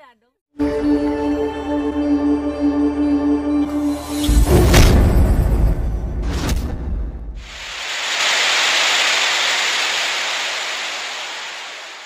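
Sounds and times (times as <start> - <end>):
tv static hiss: 7.4 - 12.0.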